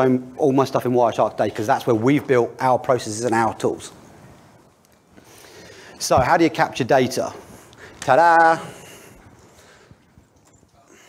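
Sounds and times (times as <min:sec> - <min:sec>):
faint footsteps: 0:03.8 - 0:11.0.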